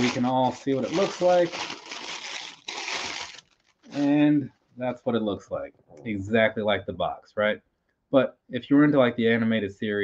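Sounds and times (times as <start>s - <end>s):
plastic bag crinkling: 0.0s - 4.2s.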